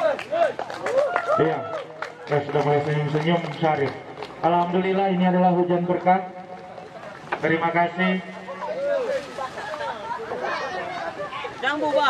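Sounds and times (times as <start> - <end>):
man's amplified voice: 2.3 - 6.4, 7.4 - 8.6
people chattering: 4.5 - 12.0.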